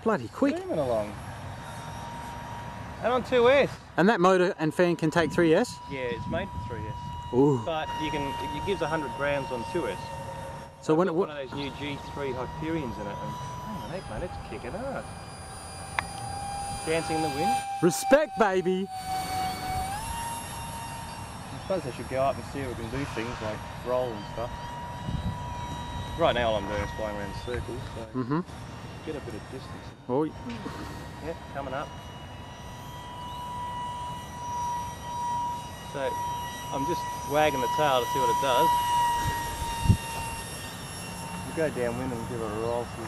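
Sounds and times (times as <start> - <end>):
electric ducted fan whine: 0.0 - 43.0.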